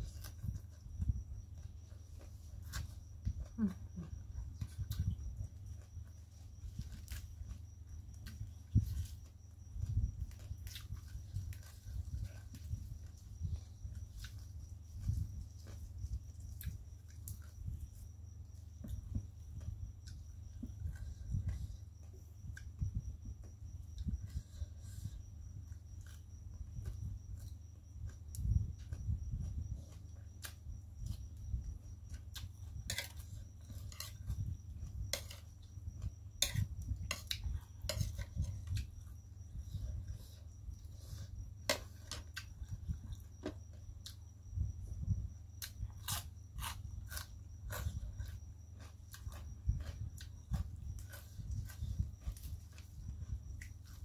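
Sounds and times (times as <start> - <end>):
chewing food: 0.0 - 22.8, 45.5 - 54.0
steady low hum: 0.0 - 54.0.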